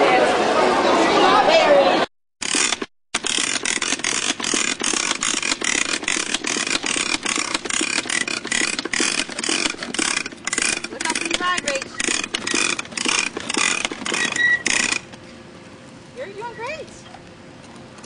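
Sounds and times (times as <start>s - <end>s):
bicycle rattling scrape on asphalt: 2.4s - 15.1s
thin squeak: 14.2s - 14.8s.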